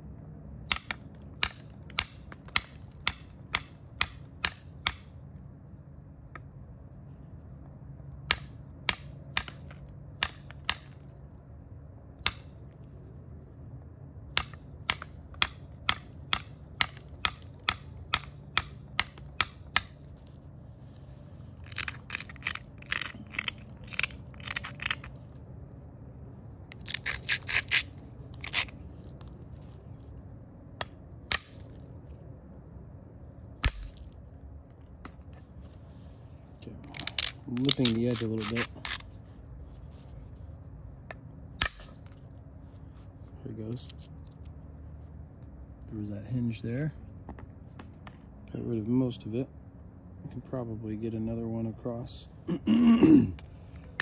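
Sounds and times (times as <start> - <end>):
tool scraping against stone: 20.9 - 25.4, 26.7 - 29.3, 36.8 - 39.2.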